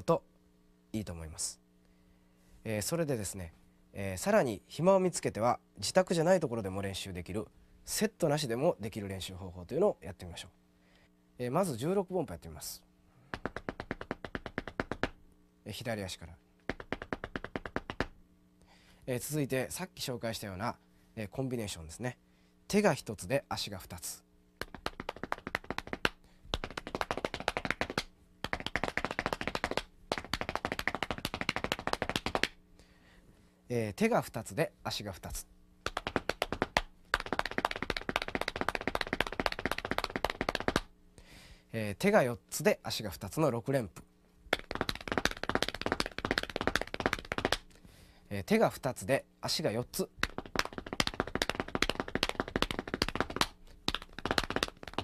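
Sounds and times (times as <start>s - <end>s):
hands slapping thighs: 13.3s - 15.2s, 16.6s - 18.2s, 24.6s - 32.6s, 35.8s - 40.9s, 44.5s - 47.8s, 49.9s - 55.0s.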